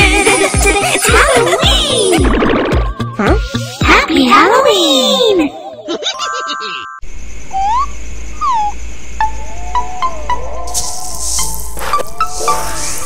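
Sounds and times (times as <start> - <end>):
chiming stepped tones: 6.1 - 7.0.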